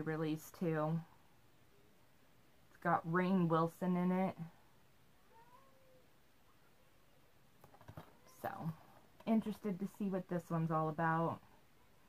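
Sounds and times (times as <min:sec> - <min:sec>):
faint cat meow: 0:05.2 - 0:06.1.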